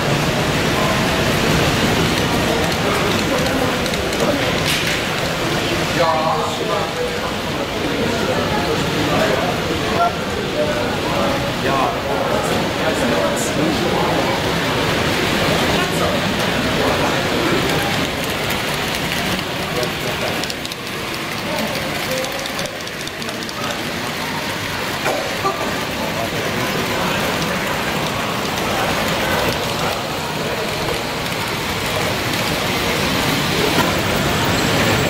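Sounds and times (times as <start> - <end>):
babble of many voices: 0.0 - 35.0
model trains running on track: 0.0 - 35.0.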